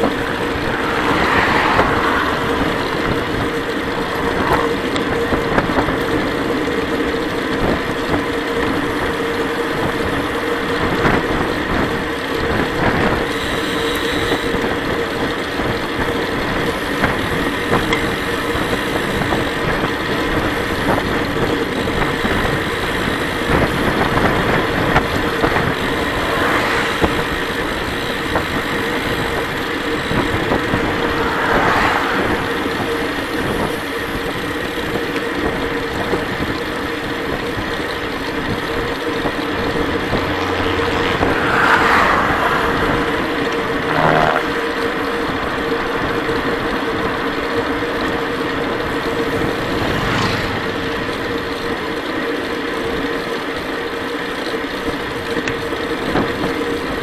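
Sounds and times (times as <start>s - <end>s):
wind noise on microphone: 0.0s - 52.0s
bike tyres rolling on asphalt: 0.0s - 57.0s
steady hum: 23.5s - 53.7s.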